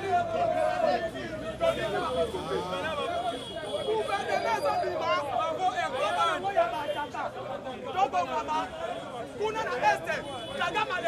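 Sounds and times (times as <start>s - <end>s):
man talking animatedly: 0.0s - 11.0s
voices chattering: 0.0s - 11.0s.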